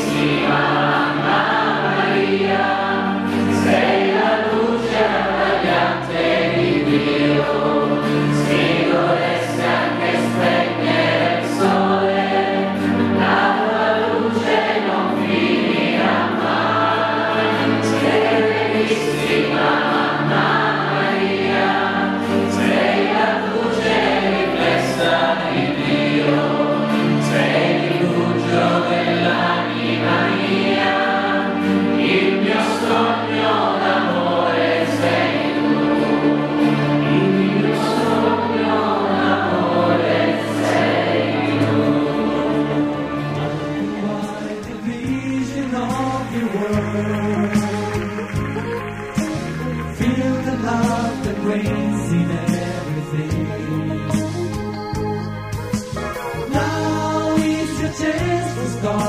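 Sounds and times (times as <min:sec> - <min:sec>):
choir singing a slow hymn: 0:00.0 - 0:48.0
instrumental accompaniment: 0:00.0 - 0:59.0.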